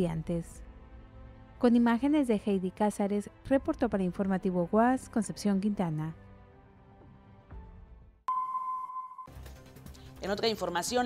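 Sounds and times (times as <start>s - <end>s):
faint background music: 0.0s - 7.8s, 9.3s - 11.0s.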